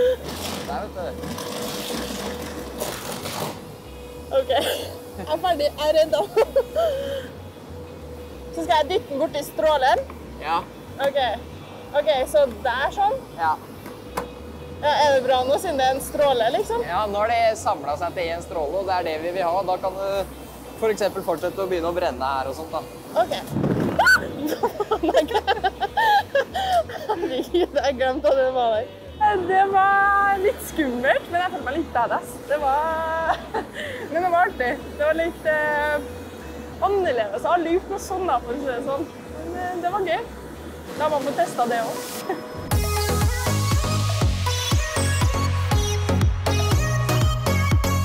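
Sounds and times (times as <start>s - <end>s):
tapping lance hissing and burning: 0.0s - 7.2s, 17.5s - 27.8s
plant machinery hum: 0.0s - 48.0s
woman squealing: 23.9s - 24.6s
woman laughing nervously: 24.0s - 28.0s.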